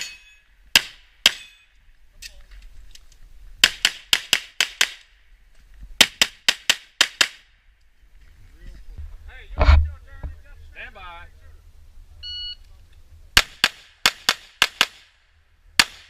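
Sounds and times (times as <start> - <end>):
pistol shots: 13.4 - 15.1, 15.8 - 16.0.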